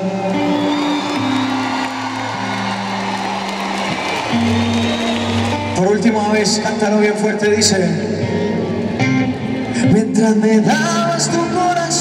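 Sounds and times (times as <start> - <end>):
concert crowd noise: 0.0 - 12.0
live band playing low chords: 0.0 - 12.0.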